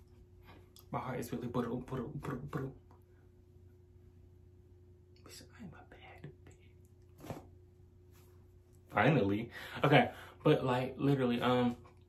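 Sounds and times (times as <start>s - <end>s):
person whispering: 5.2s - 6.8s.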